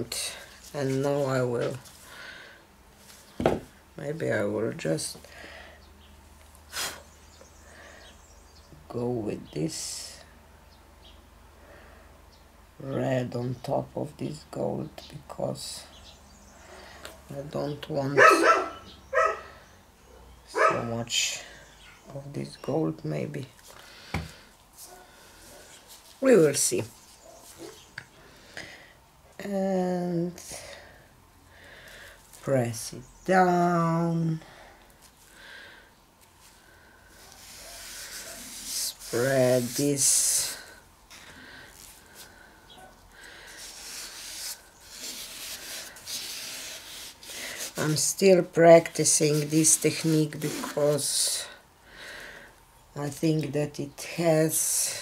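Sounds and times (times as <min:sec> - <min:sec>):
dog barking: 0:18.2 - 0:19.5, 0:20.1 - 0:20.9
gloved hand rubbing canvas: 0:36.4 - 0:42.4, 0:43.2 - 0:51.2.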